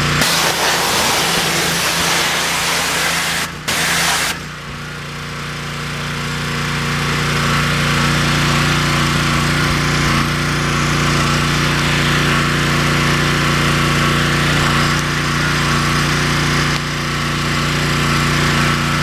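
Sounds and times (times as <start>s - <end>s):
high-pressure water jet hissing: 0.0s - 4.6s
pressure washer hum: 0.0s - 19.0s.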